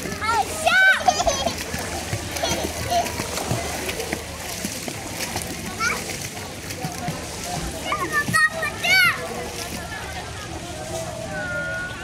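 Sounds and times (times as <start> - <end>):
children shouting and squealing: 0.0 - 1.8, 7.8 - 9.5
pool water splashing: 0.0 - 12.0.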